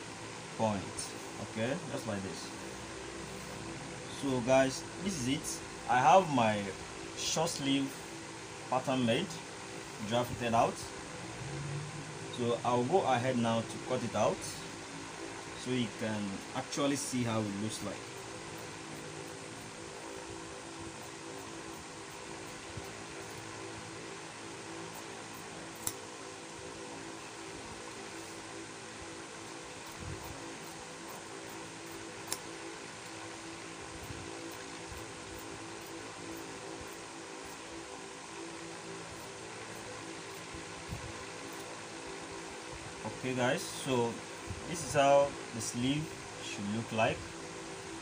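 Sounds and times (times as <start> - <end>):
mechanical hum: 0.0 - 48.0.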